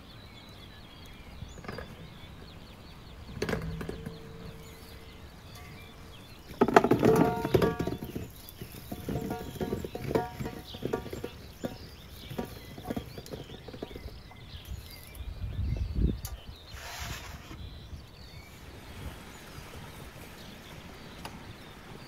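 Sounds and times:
apples knocking: 0:01.5 - 0:14.6
apples thudding into metal basin: 0:03.3 - 0:14.0
metal bowl ringing: 0:03.5 - 0:06.2.

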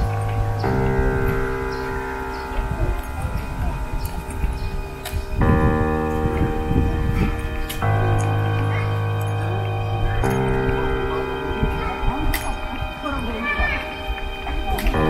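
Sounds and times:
sustained synth chords: 0:00.0 - 0:15.0.

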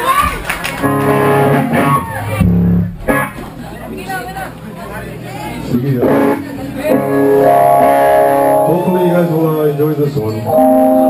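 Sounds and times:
electric guitar strumming chords: 0:00.7 - 0:03.5, 0:06.0 - 0:09.0, 0:10.3 - 0:11.0.

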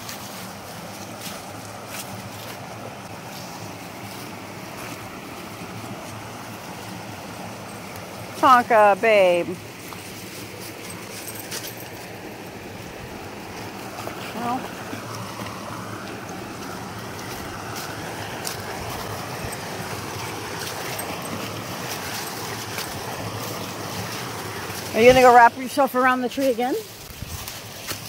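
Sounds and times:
creek running over rocks: 0:00.0 - 0:28.0.

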